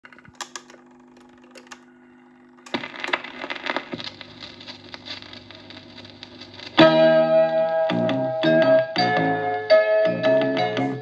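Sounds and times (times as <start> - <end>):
record player hum: 0.0 - 11.0
vinyl groove crackling and popping: 2.4 - 11.0
music from record player: 2.7 - 11.0.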